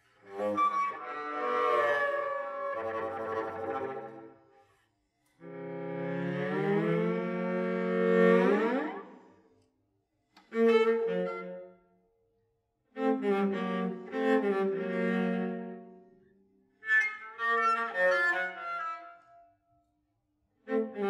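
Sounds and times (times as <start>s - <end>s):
bowed cello: 0.0s - 4.4s, 5.4s - 9.4s, 10.4s - 11.7s, 12.9s - 19.3s, 20.6s - 21.0s.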